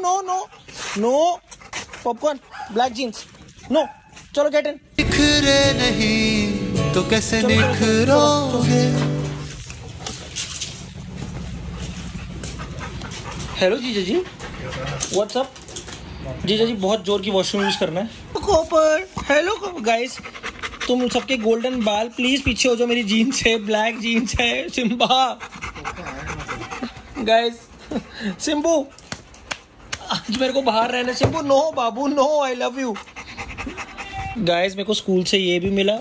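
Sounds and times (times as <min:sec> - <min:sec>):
dog panting: 0:00.0 - 0:03.0, 0:09.7 - 0:15.4, 0:19.4 - 0:30.0, 0:32.4 - 0:34.6
song playing: 0:05.0 - 0:09.6
faint clicks of dogs moving: 0:09.5 - 0:13.6, 0:14.3 - 0:16.2.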